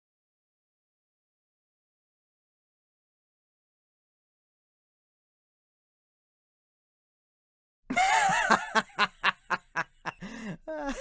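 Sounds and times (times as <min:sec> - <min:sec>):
person laughing: 0:07.9 - 0:11.0.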